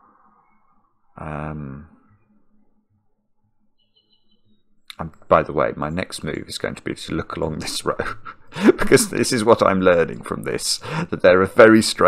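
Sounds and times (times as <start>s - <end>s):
faint low hum: 0.0s - 2.7s, 3.8s - 12.0s
faint high-pitched chirp: 3.7s - 4.8s.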